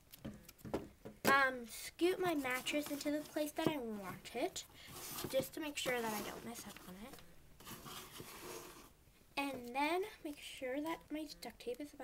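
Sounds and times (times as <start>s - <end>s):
cloth and cardboard rustling: 2.0s - 10.0s.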